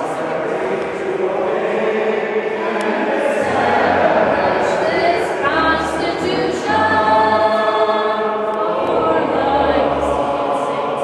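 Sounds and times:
group chanting in unison: 0.0 - 11.0.

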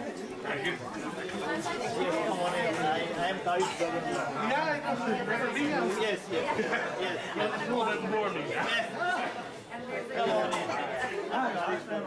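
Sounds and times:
overlapping chatter: 0.0 - 12.0.

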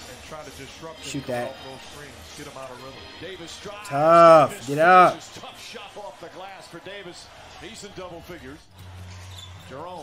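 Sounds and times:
commentator talking: 1.0 - 1.6, 3.8 - 5.2
arena noise: 3.8 - 5.3.

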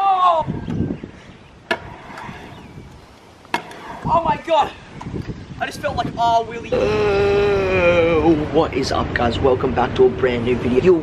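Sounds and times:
scooter wheels rolling on concrete: 1.1 - 5.9.

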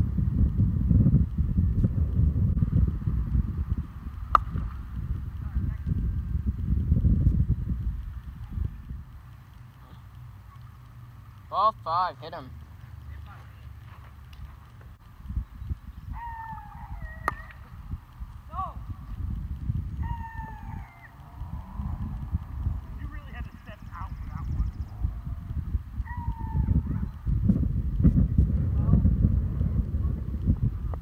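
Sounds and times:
outdoor rumble: 0.0 - 31.0
high falling calls: 9.8 - 19.0, 19.6 - 27.3
people running on grass: 12.8 - 15.3.

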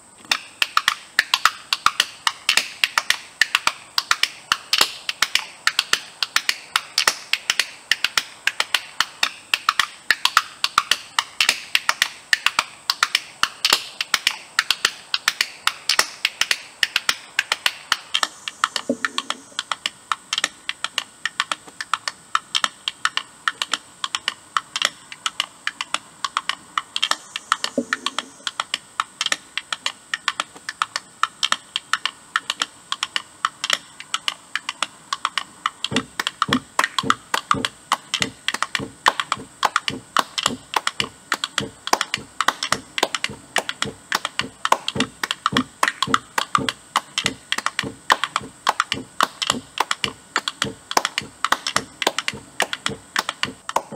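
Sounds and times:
hand percussion clicking: 0.2 - 53.9.

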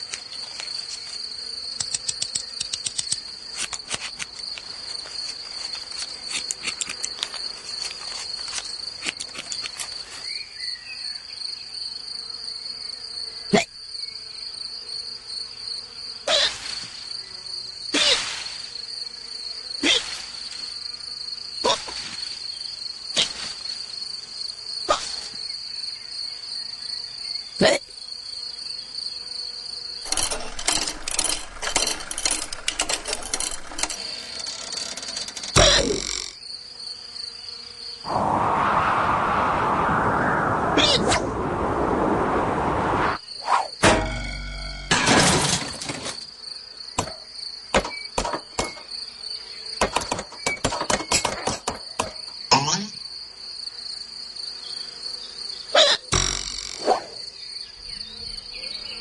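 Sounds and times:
rapid rattling insect chirr: 0.0 - 38.2, 43.2 - 59.0
insects chirring: 0.0 - 59.0
short hiccups: 13.5 - 13.7, 52.5 - 53.0, 55.8 - 56.1.

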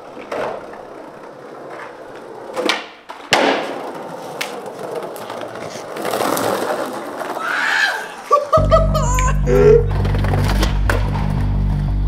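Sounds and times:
skateboard wheels rolling on pavement: 0.0 - 12.0.

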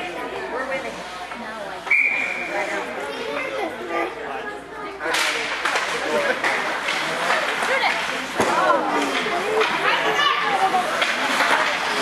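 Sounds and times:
spectators' voices: 0.0 - 12.0
hockey sticks clacking: 5.1 - 12.0
skates scraping on ice: 5.4 - 12.0.

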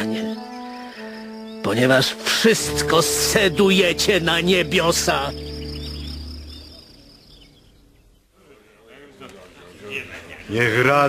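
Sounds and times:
low music chord: 0.0 - 7.7
high chirps of crickets and birds: 0.0 - 8.4.

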